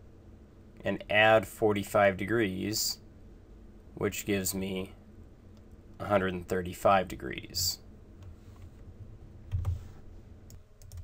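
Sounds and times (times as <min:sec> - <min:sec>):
keyboard and mouse clicks: 0:09.5 - 0:09.8, 0:10.5 - 0:11.0.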